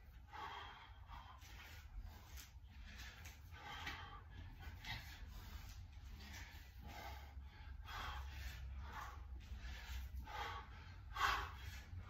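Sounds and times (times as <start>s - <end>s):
man breathing heavily: 0.0s - 12.0s.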